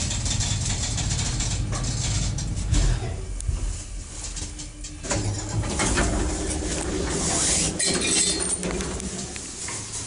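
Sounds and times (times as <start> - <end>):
lift running hum: 0.0 - 10.0.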